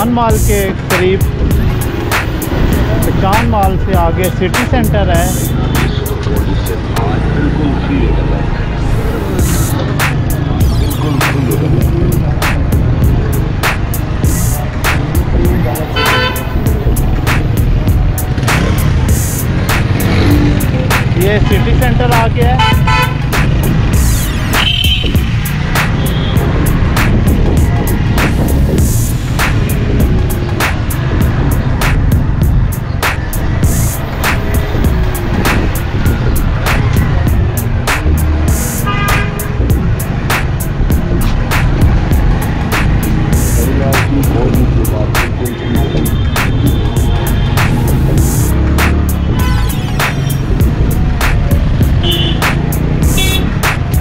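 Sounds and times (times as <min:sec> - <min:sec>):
voices: 0:00.0 - 0:01.9, 0:02.6 - 0:24.1, 0:42.2 - 0:54.0
music with steady beat: 0:00.0 - 0:07.0, 0:08.9 - 0:54.0
traffic engine and road rumble: 0:00.0 - 0:54.0.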